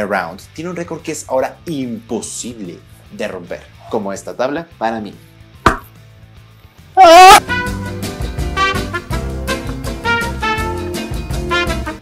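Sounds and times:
hand striking wooden board: 5.6s - 5.9s.

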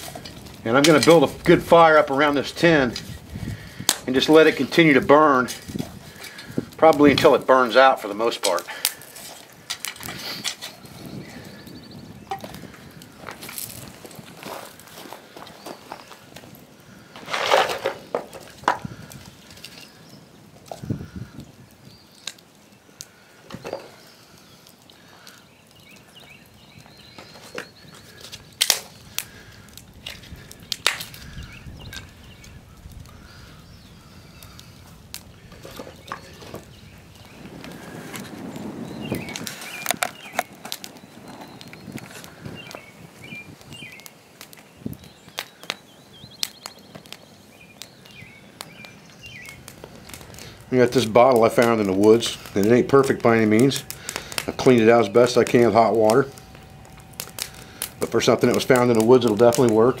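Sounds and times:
firewood knocking and clattering: 0.0s - 11.6s, 12.2s - 20.0s, 23.4s - 24.0s, 25.8s - 33.5s, 34.4s - 42.9s, 48.6s - 60.0s
shuffling footsteps on gravel: 0.0s - 20.0s, 25.1s - 32.6s, 34.8s - 60.0s.

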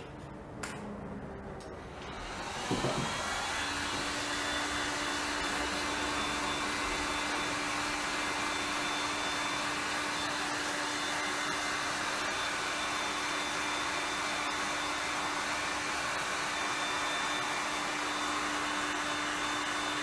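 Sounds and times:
heat gun motor hum: 1.9s - 20.0s.

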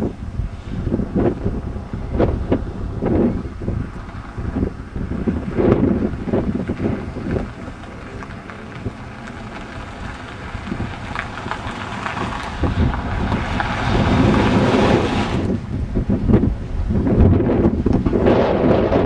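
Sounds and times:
wind buffeting microphone: 0.0s - 19.0s
minivan rolling past: 1.0s - 17.7s.

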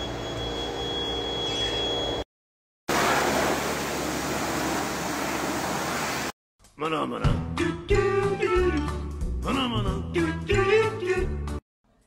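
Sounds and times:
water spraying from hose: 2.9s - 6.3s.

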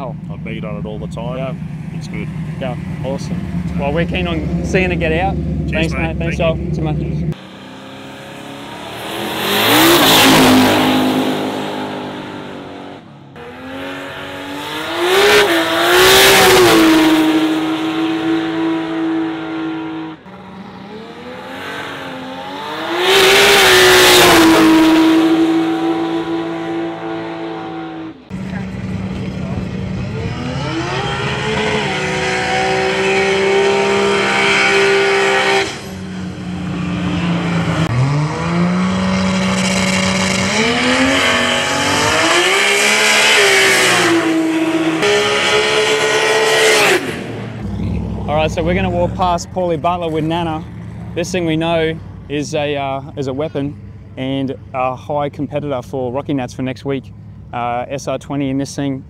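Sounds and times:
engine revving: 0.0s - 54.9s.

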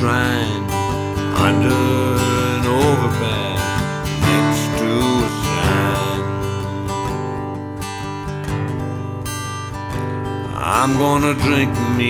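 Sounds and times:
man singing: 0.0s - 7.2s, 10.4s - 12.0s
acoustic guitar strumming: 0.0s - 12.0s.

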